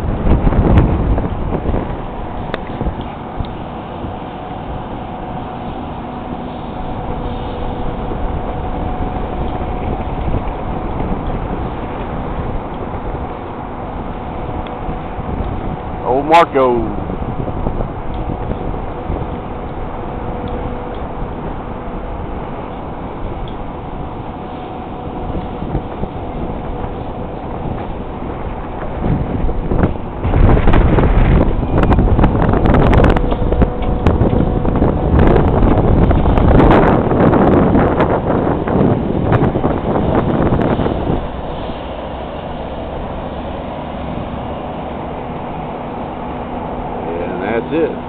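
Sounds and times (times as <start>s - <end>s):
steady mechanical hum: 0.0s - 48.0s
wind buffeting microphone: 0.0s - 48.0s.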